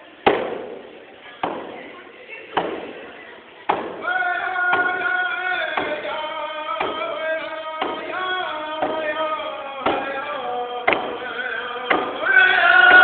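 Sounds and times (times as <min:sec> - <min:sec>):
drum beating steadily: 0:03.7 - 0:07.2, 0:07.8 - 0:13.0
men singing: 0:04.0 - 0:13.0.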